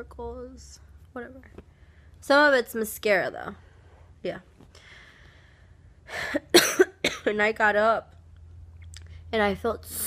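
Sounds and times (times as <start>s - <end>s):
woman coughing: 6.3s - 7.4s.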